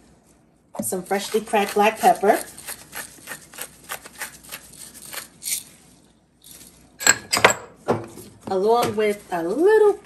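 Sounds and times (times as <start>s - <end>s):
pepper mill grinding: 0.9s - 5.8s, 6.4s - 6.9s.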